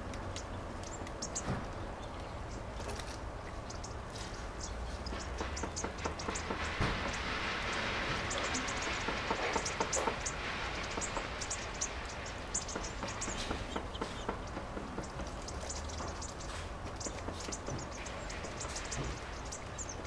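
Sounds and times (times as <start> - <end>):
birds splashing water: 0.0 - 20.0.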